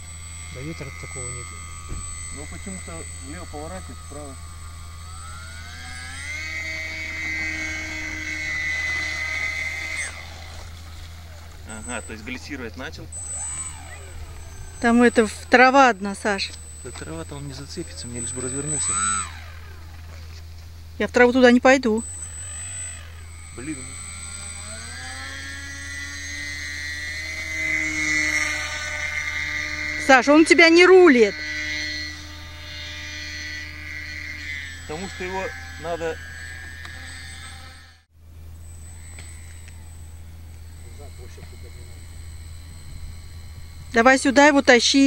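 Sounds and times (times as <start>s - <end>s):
electric model plane motor whine: 0.0s - 45.0s.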